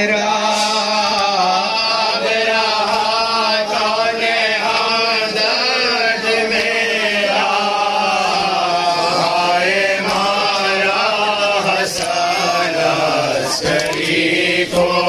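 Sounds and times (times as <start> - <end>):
men chanting a lament: 0.0 - 15.0.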